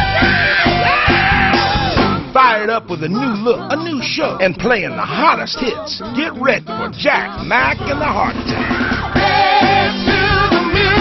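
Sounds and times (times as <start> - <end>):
rock and soul band music: 0.0 - 3.0, 5.8 - 11.0
loud sung vocal: 0.0 - 11.0.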